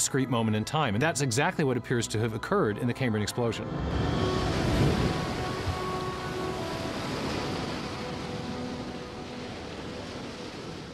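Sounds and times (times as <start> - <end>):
ocean surf breaking against rocks: 3.6 - 10.9.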